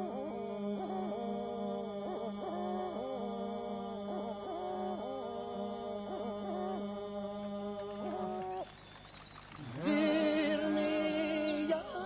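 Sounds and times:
men's choir singing over drone: 0:00.0 - 0:08.6, 0:09.6 - 0:12.0.

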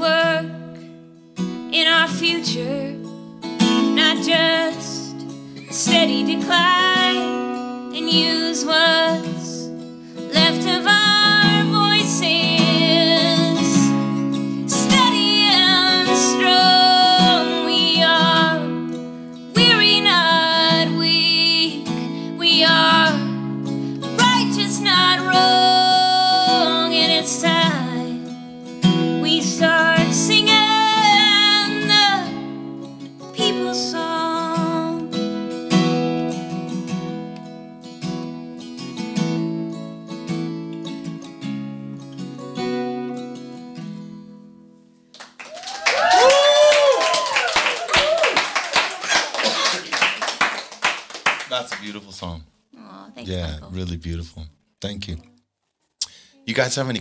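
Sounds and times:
woman singing with vibrato: 0:00.0 - 0:00.6, 0:01.7 - 0:03.0, 0:04.0 - 0:05.1, 0:05.8 - 0:09.7, 0:10.3 - 0:13.9, 0:14.7 - 0:18.8, 0:19.6 - 0:23.4, 0:24.2 - 0:28.2, 0:29.2 - 0:32.4, 0:33.4 - 0:35.0
strummed acoustic guitar: 0:00.0 - 0:45.1.

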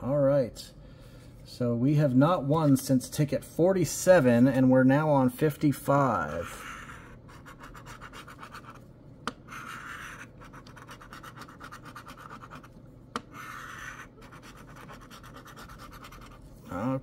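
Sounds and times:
coin scratching lottery ticket: 0:09.5 - 0:12.7, 0:13.3 - 0:16.4.

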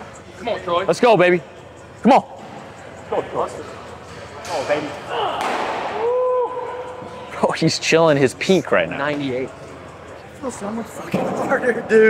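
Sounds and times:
baseball cracking into catcher's mitt: 0:05.4 - 0:06.0.

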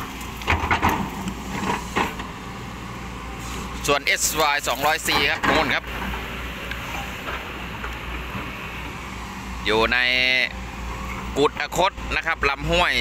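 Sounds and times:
excavator diesel engine drone: 0:00.0 - 0:13.0.

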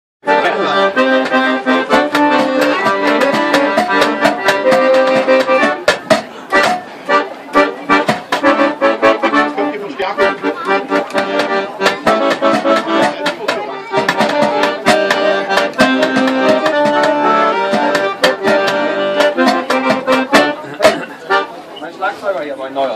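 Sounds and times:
accordion playing lively tune: 0:00.2 - 0:22.0
hand-drumming on metal lids: 0:01.9 - 0:06.8, 0:11.0 - 0:21.0.

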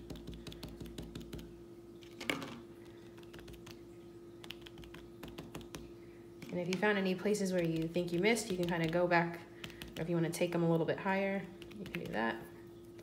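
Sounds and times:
cotton swabs tapping paper: 0:00.0 - 0:01.5, 0:04.4 - 0:10.9, 0:11.6 - 0:12.3.

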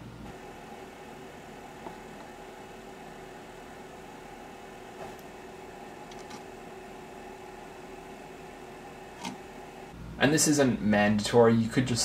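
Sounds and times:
faint machine hum: 0:00.0 - 0:12.0.

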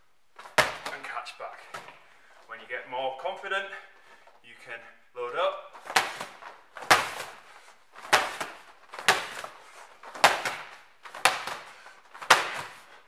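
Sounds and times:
medicine ball hitting wall: 0:00.4 - 0:02.0, 0:05.8 - 0:07.4, 0:08.0 - 0:13.0.

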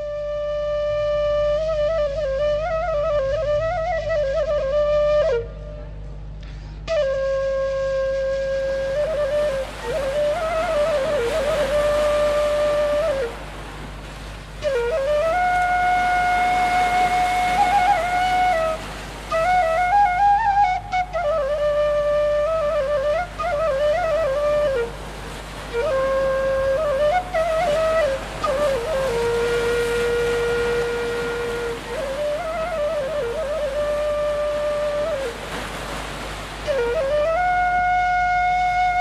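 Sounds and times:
faint hiss: 0:00.0 - 0:39.0
flute playing: 0:00.0 - 0:39.0.

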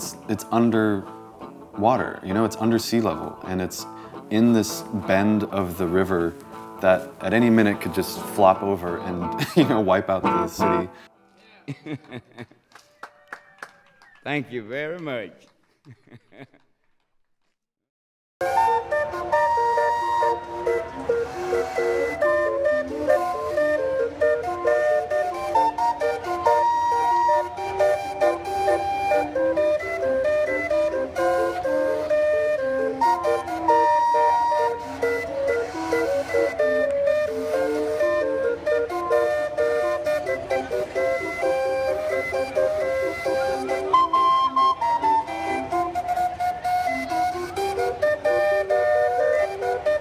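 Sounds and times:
steam calliope playing a tune: 0:00.0 - 0:11.1, 0:18.4 - 0:50.0.

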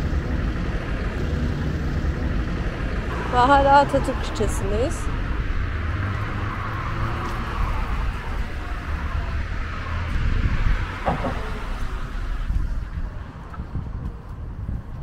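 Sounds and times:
car passing on road: 0:00.0 - 0:15.0
wind rumble on microphone: 0:00.0 - 0:15.0.

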